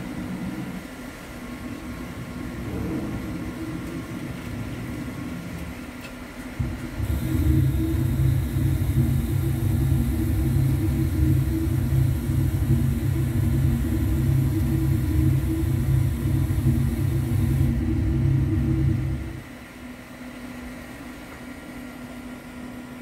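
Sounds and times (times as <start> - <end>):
deep rumble: 6.6 - 19.5.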